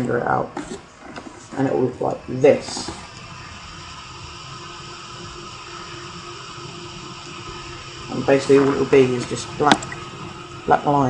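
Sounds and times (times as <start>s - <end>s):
faint constant hum: 0.0s - 11.0s
steady hiss: 0.0s - 11.0s.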